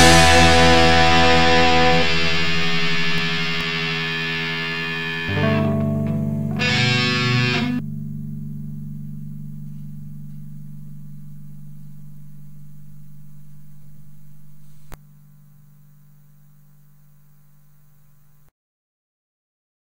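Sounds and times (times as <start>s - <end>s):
guitar amplifier hum: 0.0s - 18.5s.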